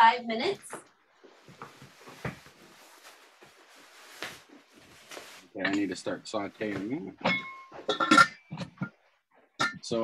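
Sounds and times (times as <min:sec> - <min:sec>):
man speaking: 0:05.5 - 0:07.2, 0:09.8 - 0:10.0.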